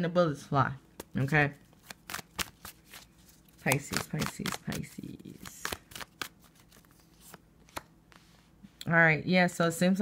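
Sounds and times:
cards knocking together: 0:01.8 - 0:03.0, 0:03.6 - 0:07.9.

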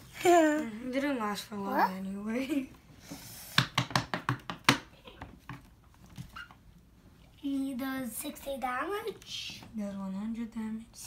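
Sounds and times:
cards tapping and clicking: 0:03.5 - 0:05.8.

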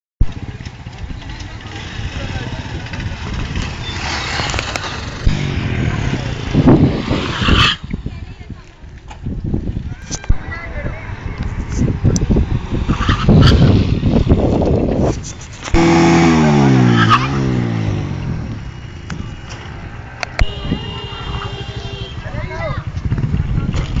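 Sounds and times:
motorcycle engine pulsing rumble: 0:00.2 - 0:24.0.

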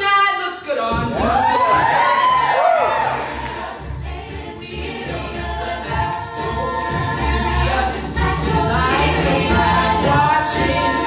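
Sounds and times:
beatboxed vocal percussion: 0:00.0 - 0:02.3, 0:03.1 - 0:11.0
a cappella group singing in harmony: 0:00.9 - 0:11.0.

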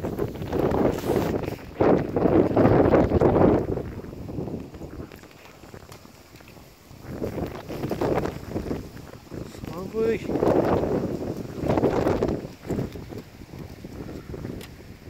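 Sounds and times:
dog fur scraping on concrete: 0:00.9 - 0:01.6.

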